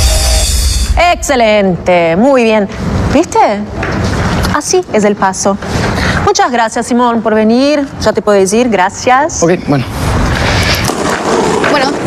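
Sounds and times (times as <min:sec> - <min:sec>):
roller-skate wheels rolling: 0:03.7 - 0:06.3, 0:10.2 - 0:12.0.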